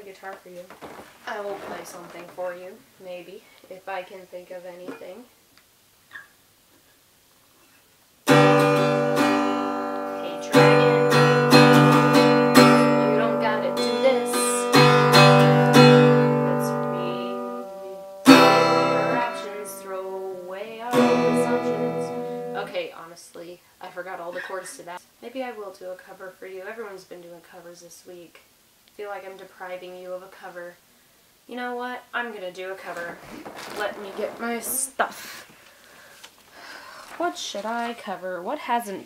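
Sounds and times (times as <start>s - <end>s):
acoustic guitar chords strummed: 8.2s - 22.9s.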